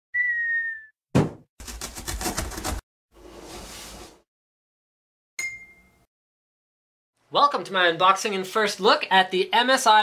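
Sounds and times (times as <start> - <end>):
cartoon whistle: 0.2 - 0.9
cardboard box landing thud: 1.2 - 1.4
box-cutter slicing cardboard: 1.6 - 2.8.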